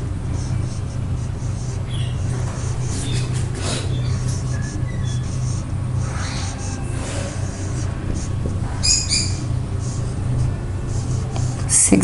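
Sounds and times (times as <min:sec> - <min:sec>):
steady low hum: 0:00.0 - 0:12.0
marker squeaking on whiteboard: 0:00.3 - 0:12.0.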